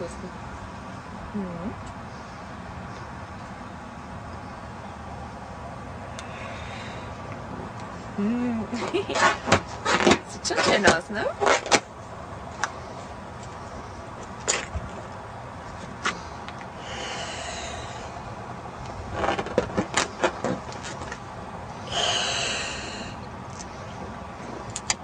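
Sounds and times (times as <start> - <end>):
breaths blown into balloon: 21.9 - 23.2.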